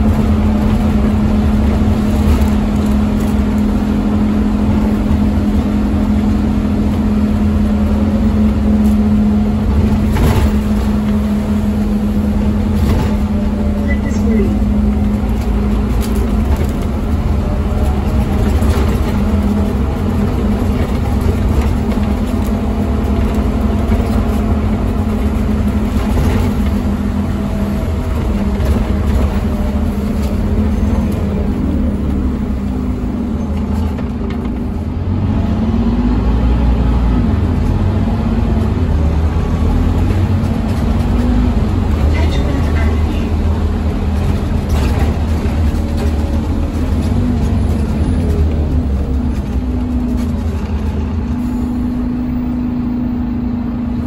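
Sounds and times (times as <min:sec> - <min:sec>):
bus diesel engine droning: 0:00.0 - 0:54.0
tyre noise on wet road: 0:00.0 - 0:54.0.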